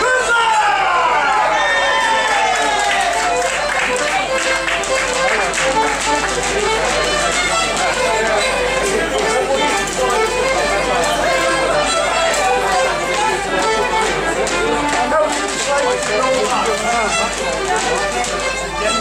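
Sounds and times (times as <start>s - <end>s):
fiddle playing a folk tune: 2.1s - 19.0s.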